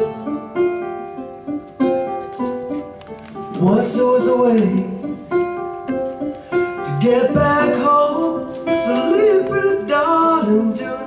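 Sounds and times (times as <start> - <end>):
ukulele chords plucked: 0.0 - 11.0.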